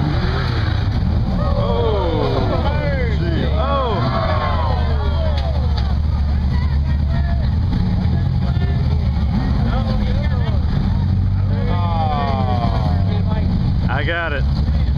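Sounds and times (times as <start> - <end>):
rock buggy engine droning: 0.0 - 14.9
spectators' voices and shouts: 1.2 - 14.9.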